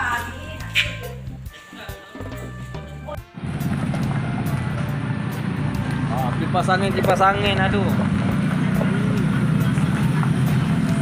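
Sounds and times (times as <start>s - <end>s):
background music: 0.0s - 11.0s
pickup truck engine running: 3.2s - 11.0s.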